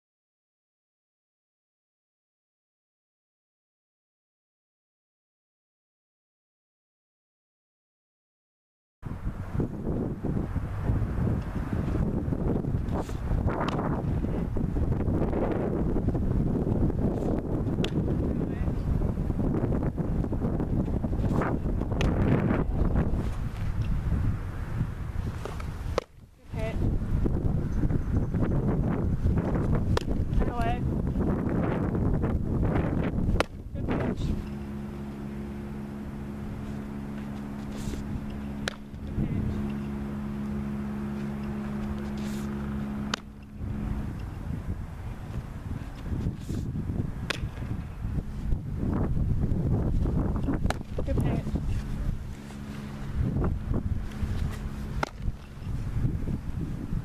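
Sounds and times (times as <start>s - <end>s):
wind buffeting microphone: 9.0s - 57.0s
low motor hum: 9.1s - 57.0s
ball smacking into mitt: 38.6s - 39.0s, 47.3s - 47.6s, 55.0s - 55.2s.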